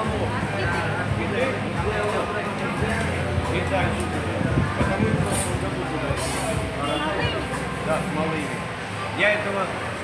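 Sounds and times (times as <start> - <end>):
indistinct voices chattering: 0.0 - 10.0.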